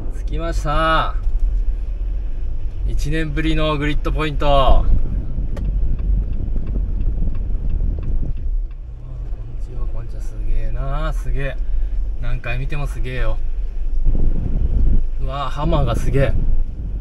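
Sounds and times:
engine and road rumble: 0.0 - 17.0.

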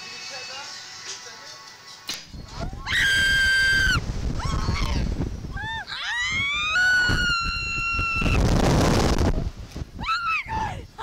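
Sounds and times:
wind buffeting microphone: 2.3 - 11.0
women screaming: 2.6 - 8.4, 10.0 - 10.9.

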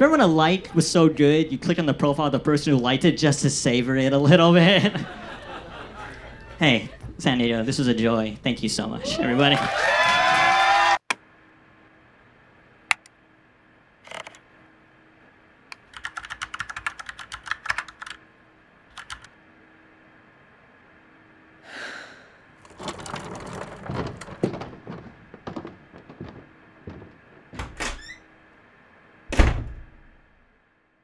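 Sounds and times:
faint steady hum: 0.0 - 31.0
typing on computer keyboard: 15.7 - 18.2, 18.9 - 19.3.

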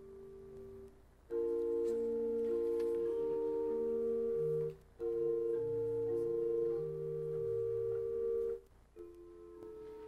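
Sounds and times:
organ chord: 0.0 - 10.0.

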